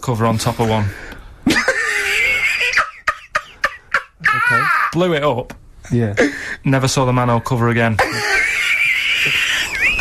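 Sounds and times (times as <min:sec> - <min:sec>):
man laughing high-pitched: 0:01.5 - 0:05.0, 0:08.0 - 0:10.0.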